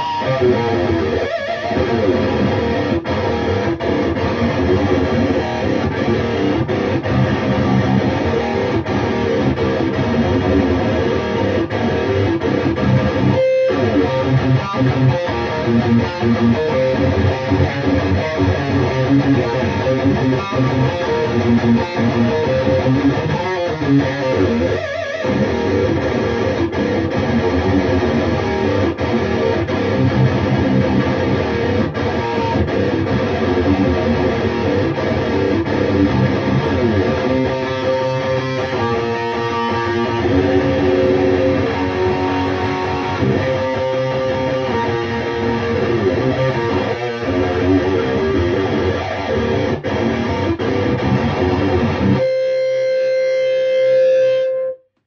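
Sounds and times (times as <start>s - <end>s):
electric guitar playing: 0.0s - 54.9s.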